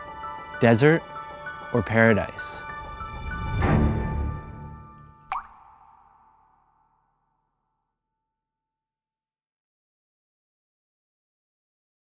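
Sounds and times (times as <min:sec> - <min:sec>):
background music: 0:00.0 - 0:06.5
water drop plop: 0:05.3 - 0:07.1.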